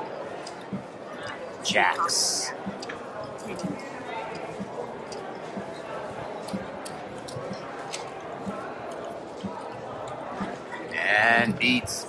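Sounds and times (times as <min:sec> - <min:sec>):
murmur of background voices: 0:00.0 - 0:12.0.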